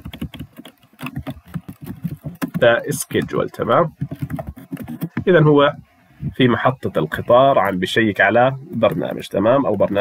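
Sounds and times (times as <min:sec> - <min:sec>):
computer keyboard typing: 0:00.0 - 0:05.3.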